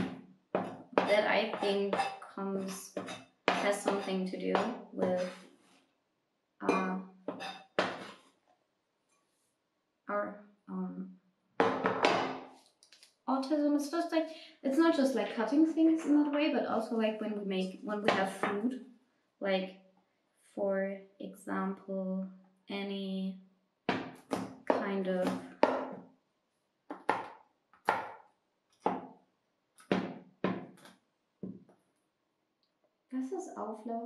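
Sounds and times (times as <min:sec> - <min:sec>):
knife chopping on cutting board: 0:02.9 - 0:05.4, 0:07.3 - 0:08.2, 0:26.9 - 0:28.2.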